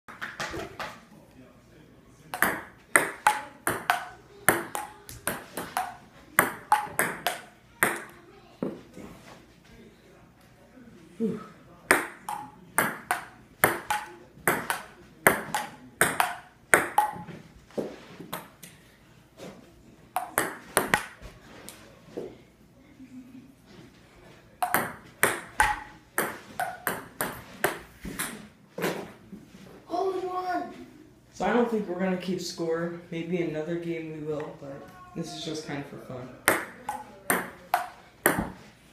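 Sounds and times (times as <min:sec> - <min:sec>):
ping pong ball hitting paddles and table: 0:00.1 - 0:01.0, 0:02.3 - 0:08.8, 0:11.9 - 0:17.4, 0:18.3 - 0:18.6, 0:20.1 - 0:21.2, 0:24.6 - 0:28.5, 0:36.4 - 0:38.7.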